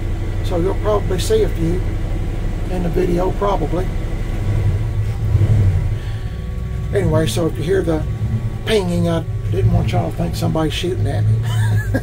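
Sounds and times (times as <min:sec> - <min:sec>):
engine idling low rumble: 0:00.0 - 0:12.0.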